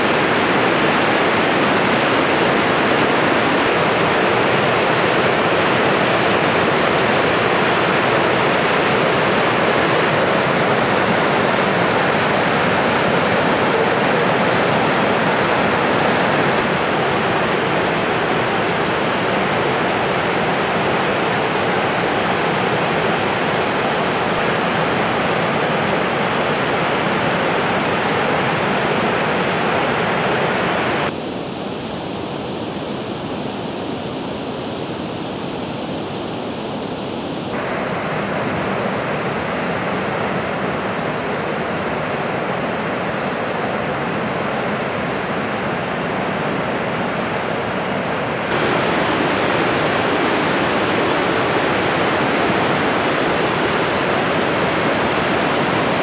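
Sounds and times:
waterfall rushing: 0.0s - 56.0s.

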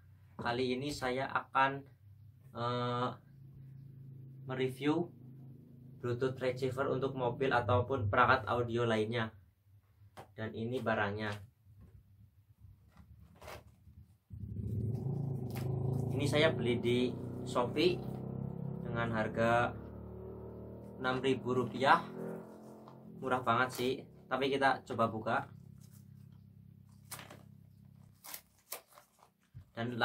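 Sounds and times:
steady low hum: 14.3s - 28.4s.

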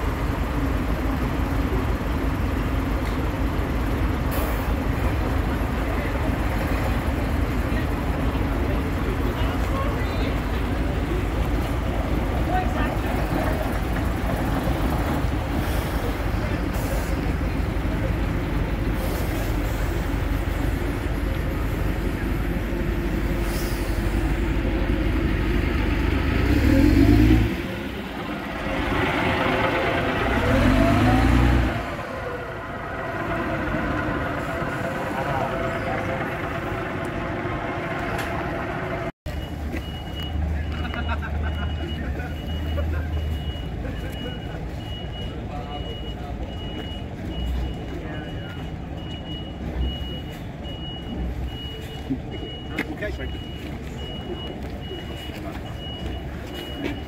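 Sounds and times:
bus diesel engine passing: 0.0s - 57.0s
reversing alarm beeping: 39.3s - 57.0s.

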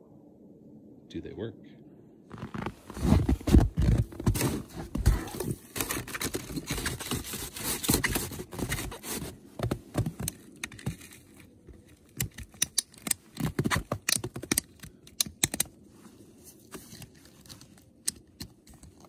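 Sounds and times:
shuffling and crunching in snow: 2.3s - 12.1s, 15.8s - 18.0s.

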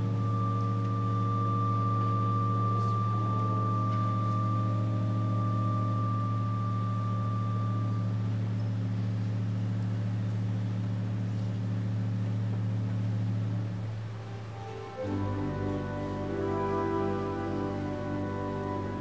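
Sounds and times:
high steady tone: 0.0s - 8.8s
loud low drone with overtones: 0.0s - 19.0s.

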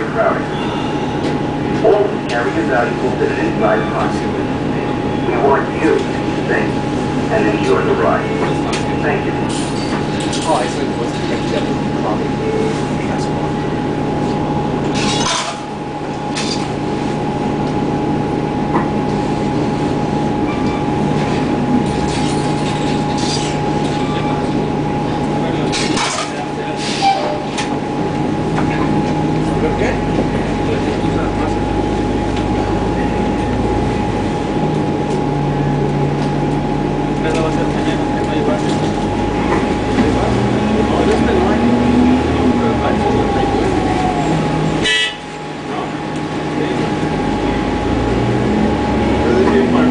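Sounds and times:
bus engine low hum: 0.0s - 49.9s
high whine of drive system: 0.0s - 49.9s.

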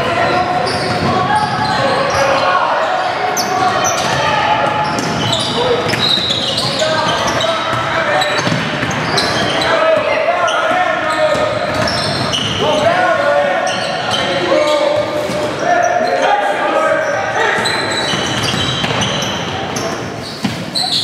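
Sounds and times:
basketball bouncing on wooden court: 7.1s - 9.2s, 17.6s - 20.8s.

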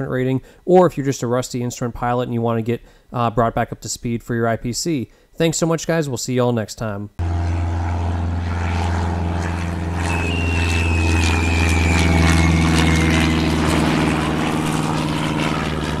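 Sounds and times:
propeller airplane engine drone: 7.2s - 16.0s
thin falling whistle: 10.0s - 14.4s.

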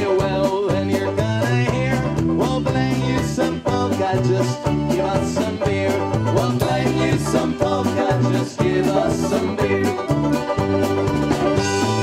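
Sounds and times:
accordion: 0.0s - 12.0s
banjo: 0.0s - 12.0s
drum kit: 0.0s - 12.0s
saxophones: 11.4s - 12.0s.

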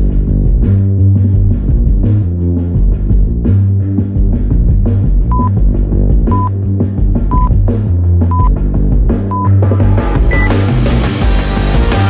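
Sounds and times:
bass-heavy rock music: 0.0s - 12.0s
higher-pitched timer beep: 5.3s - 5.5s, 6.3s - 6.5s, 7.3s - 7.5s, 8.3s - 8.5s, 10.3s - 10.5s
short timer beeps: 5.3s - 5.5s, 6.3s - 6.5s, 7.3s - 7.5s, 8.3s - 8.5s.

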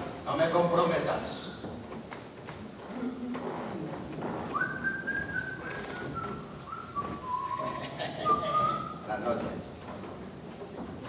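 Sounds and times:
person whistling a tune: 4.6s - 9.0s.

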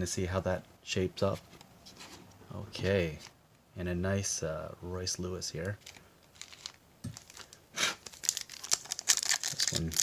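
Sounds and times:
foil wrapper crinkling and tearing: 5.8s - 10.0s.

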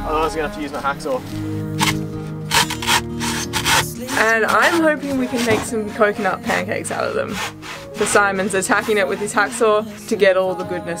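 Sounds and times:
background music: 0.0s - 11.0s
hacksaw cutting coconut: 1.8s - 5.8s, 6.5s - 10.2s.

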